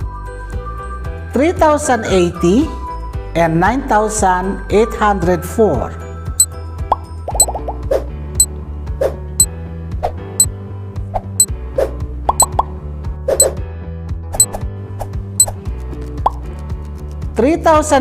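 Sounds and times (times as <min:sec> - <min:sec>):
light music with bass line: 0:00.0 - 0:18.0
timer ticking: 0:07.3 - 0:07.7, 0:12.3 - 0:12.7.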